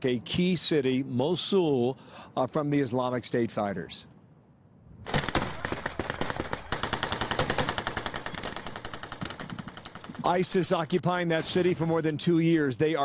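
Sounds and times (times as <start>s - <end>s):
automatic gunfire: 5.1s - 10.5s.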